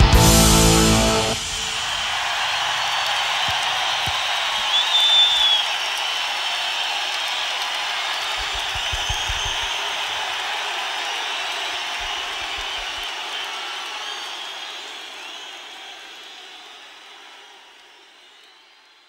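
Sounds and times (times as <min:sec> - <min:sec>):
crowd cheering and applauding: 0:00.0 - 0:19.0
high whistle: 0:01.3 - 0:06.3, 0:08.3 - 0:10.2, 0:12.0 - 0:16.4.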